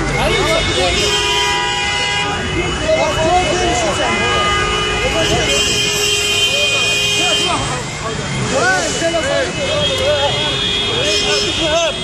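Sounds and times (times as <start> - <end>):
vehicle horn blaring: 0.1 - 7.7, 9.6 - 12.0.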